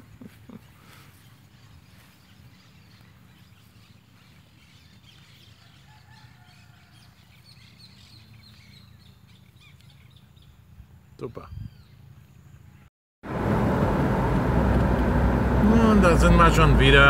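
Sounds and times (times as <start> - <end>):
birds chirping: 0.0 - 12.9
low steady rumble: 10.3 - 17.0.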